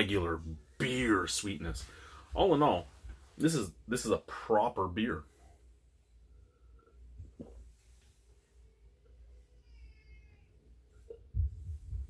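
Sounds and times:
low thumps: 0:11.2 - 0:12.0.

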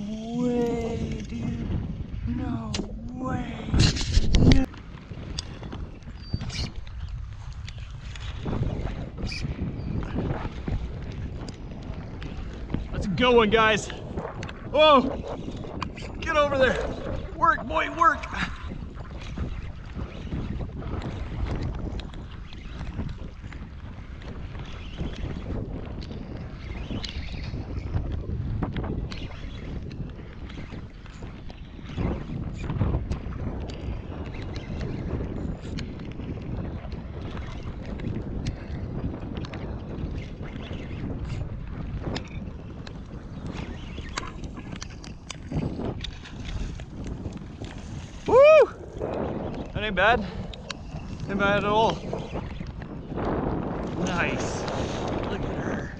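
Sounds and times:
water lapping against boat: 0:00.0 - 0:55.9
wind on microphone: 0:00.0 - 0:55.9.

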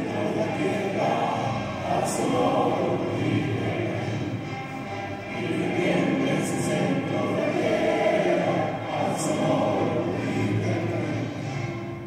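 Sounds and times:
crowd singing an anthem: 0:00.0 - 0:12.0
musical accompaniment: 0:00.0 - 0:12.0.

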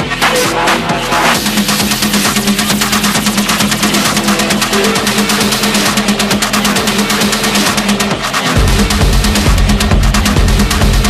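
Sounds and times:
hard techno music: 0:00.0 - 0:11.0
rapid rattling percussion hits: 0:00.0 - 0:11.0
steady droning tone: 0:00.3 - 0:11.0.

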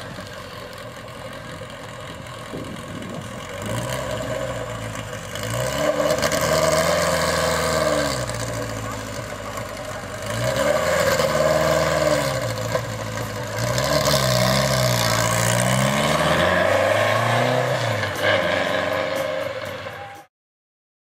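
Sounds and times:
car engine revving: 0:00.0 - 0:20.3.

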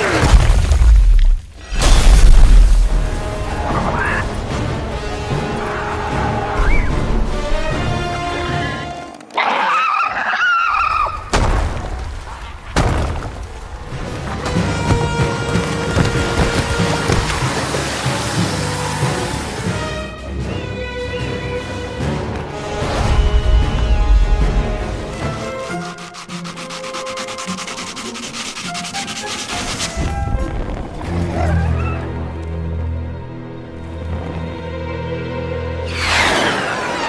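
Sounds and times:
music: 0:01.6 - 0:09.4, 0:13.6 - 0:37.0
rapid rhythmic scraping: 0:25.1 - 0:30.1.

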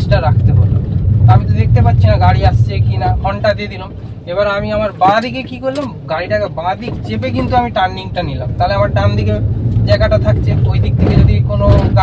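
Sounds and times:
car engine and road hum: 0:00.0 - 0:12.0.

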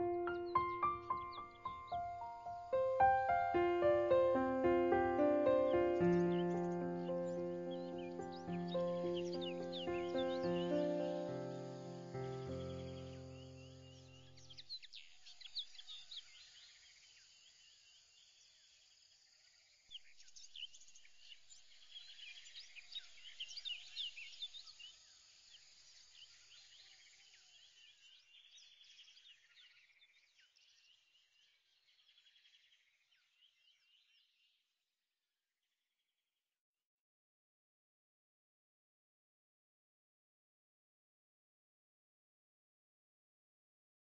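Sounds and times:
held musical chord: 0:00.0 - 0:13.6
birdsong chirps and calls: 0:00.0 - 0:17.3.

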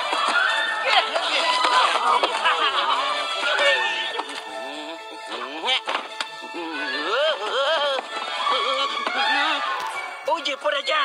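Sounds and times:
cartoon background music: 0:00.0 - 0:11.0.

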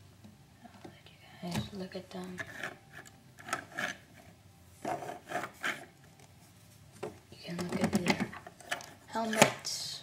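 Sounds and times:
rubbing and scraping: 0:02.4 - 0:04.2, 0:04.8 - 0:06.0.

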